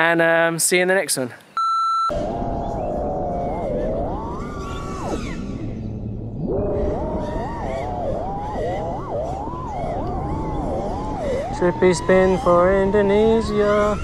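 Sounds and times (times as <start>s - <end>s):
wind rumble: 2.1s - 14.0s
quadcopter motors whining: 2.5s - 14.0s.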